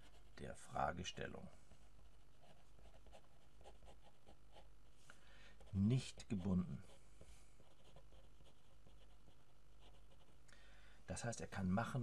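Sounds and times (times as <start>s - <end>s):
pen scratching on paper: 0.0s - 0.4s, 1.8s - 4.7s, 7.6s - 10.4s
man speaking: 0.4s - 1.6s, 5.7s - 6.9s, 11.1s - 12.0s.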